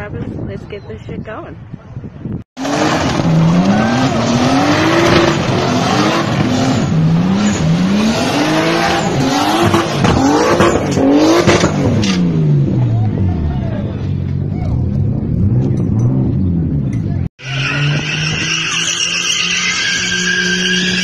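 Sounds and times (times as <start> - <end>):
car engine revving hard: 2.6 - 12.8
tyres squealing: 17.4 - 21.0.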